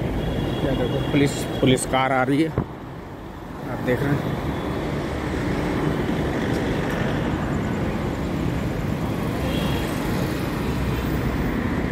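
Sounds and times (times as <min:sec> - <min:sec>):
road traffic rumble: 0:00.0 - 0:11.9.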